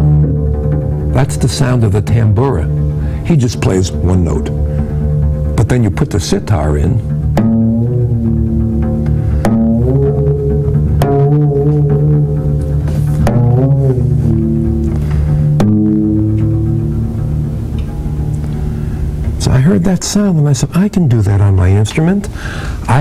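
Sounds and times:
low drone note: 0.0 - 20.8
plucked bending bass notes: 0.0 - 21.6.

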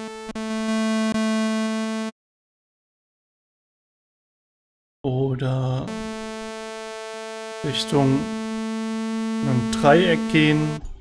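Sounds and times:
synthesizer sawtooth note: 0.0 - 2.1, 5.9 - 10.8.

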